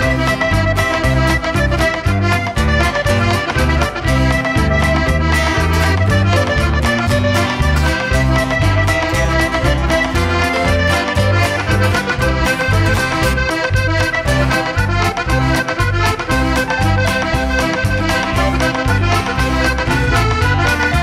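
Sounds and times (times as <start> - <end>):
accordion playing folk tune: 0.0 - 21.0
acoustic guitar: 0.0 - 21.0
drums: 0.0 - 21.0
electric bass: 0.0 - 21.0
keyboard: 0.0 - 21.0.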